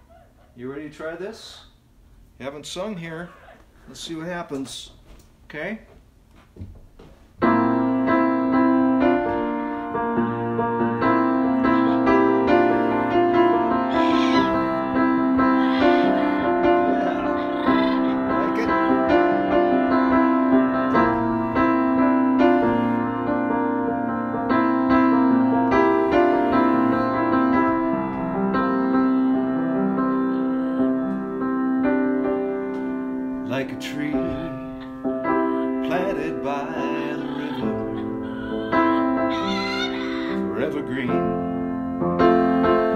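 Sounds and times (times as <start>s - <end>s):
keyboard playing sustained chords: 7.5s - 33.8s
wavering vocal sounds: 11.2s - 21.7s, 33.9s - 41.0s.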